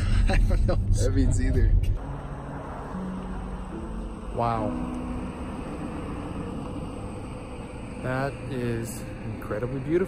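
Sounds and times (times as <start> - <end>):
car road and engine noise: 0.0 - 10.0.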